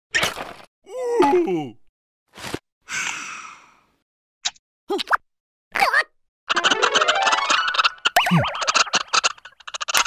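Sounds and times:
cartoon music: 0:06.5 - 0:09.0
warbling boing glide: 0:06.5 - 0:09.1.

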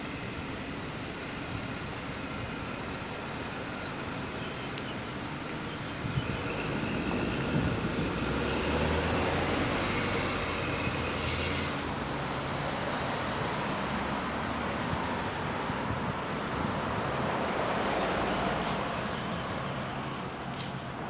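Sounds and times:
low engine hum: 0:00.0 - 0:21.0
road noise inside vehicle: 0:00.0 - 0:21.0.

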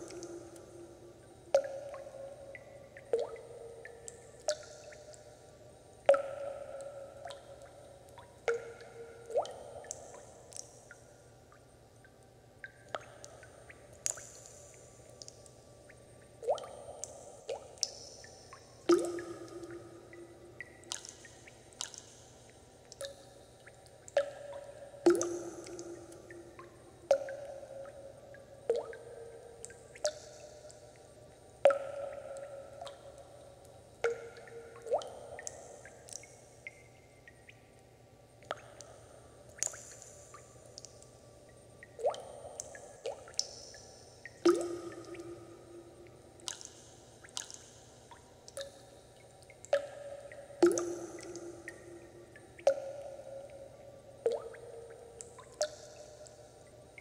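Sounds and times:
water drops plinking into water: 0:00.0 - 0:57.0.

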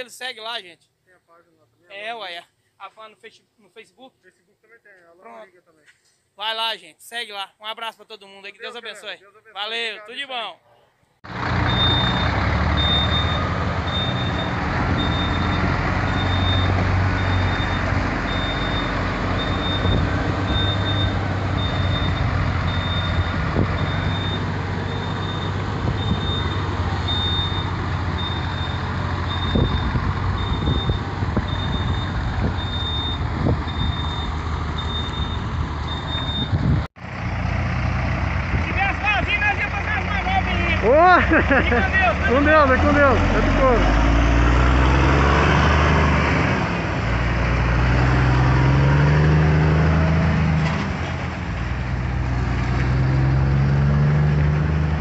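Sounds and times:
truck diesel engine running: 0:11.3 - 0:55.0
high electronic warning beep: 0:11.7 - 0:36.6.

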